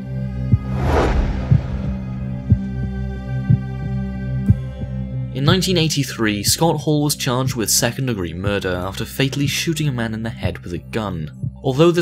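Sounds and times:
heavy low thump: 0.5 - 3.6
low drone: 0.5 - 3.8
whoosh: 0.6 - 3.1.

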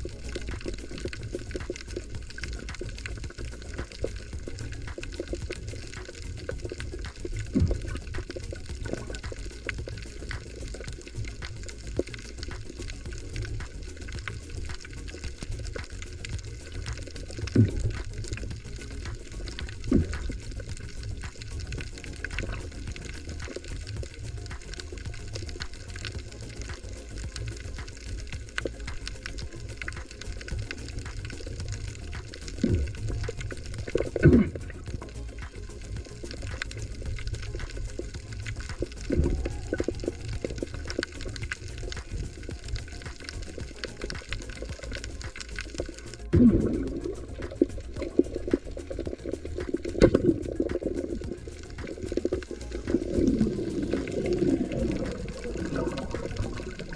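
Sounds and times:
small crackling clicks: 0.0 - 56.9
underwater rumble and hiss: 0.0 - 56.9
whooshing water bursts: 43.4 - 56.9.

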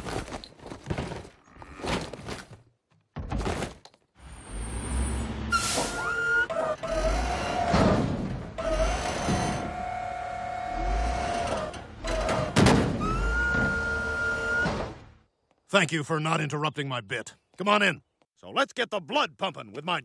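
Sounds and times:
hydraulic arm whine: 5.5 - 15.1.

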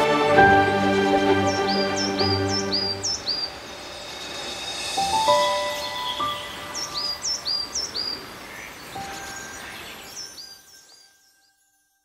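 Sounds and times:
outdoor background noise: 0.0 - 11.9
bird chirping: 0.5 - 12.0.

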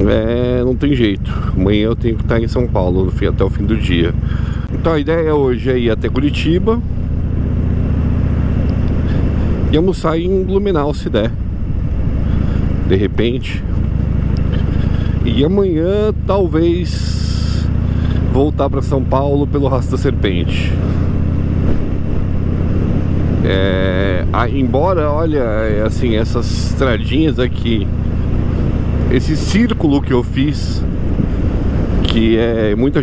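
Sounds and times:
motorcycle engine running: 0.0 - 33.0
truck passing: 0.0 - 33.0
wind and road noise: 0.0 - 33.0
wind noise: 20.8 - 23.8, 27.7 - 33.0.

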